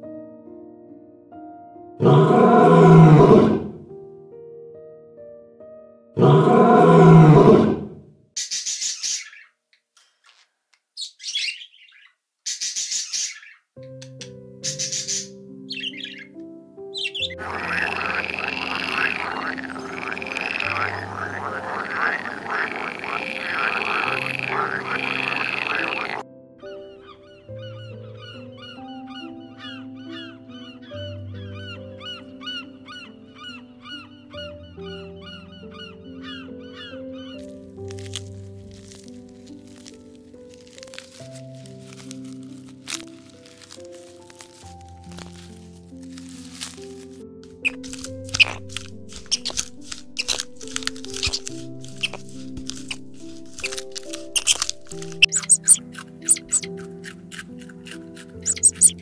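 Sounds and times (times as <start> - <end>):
soft background music: 0.0 - 9.2, 12.7 - 59.0
harsh bird squawks: 2.0 - 3.8, 6.2 - 9.5, 11.0 - 13.7, 14.6 - 38.2, 47.6 - 59.0
frogs croaking: 2.0 - 3.9, 14.6 - 41.6, 47.5 - 59.0
quick high chirps: 55.2 - 56.7, 58.4 - 59.0.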